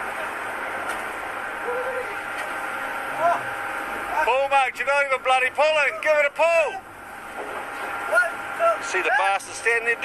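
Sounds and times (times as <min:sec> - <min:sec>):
boat machinery hum: 0:00.0 - 0:10.0.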